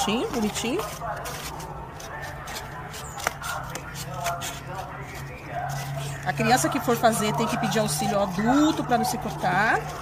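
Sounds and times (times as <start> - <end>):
scissors cutting cardboard: 0.0 - 10.0.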